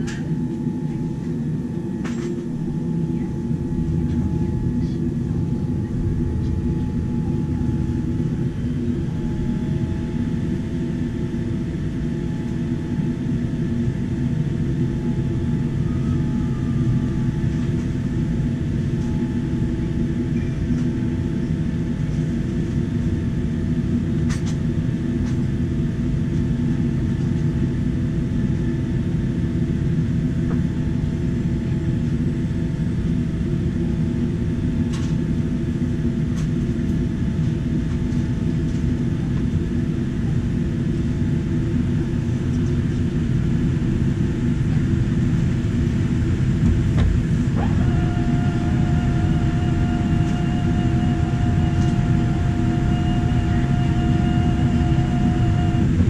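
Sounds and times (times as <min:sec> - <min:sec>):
steady whine with overtones: 0:00.0 - 0:23.6, 0:40.3 - 0:56.0
airplane cabin rumble: 0:00.0 - 0:56.0
faint steady tones: 0:47.6 - 0:56.0.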